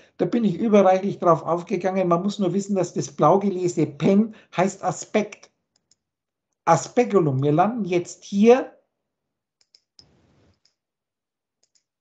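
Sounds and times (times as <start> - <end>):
computer mouse clicks: 9.6 - 10.8, 11.6 - 11.9.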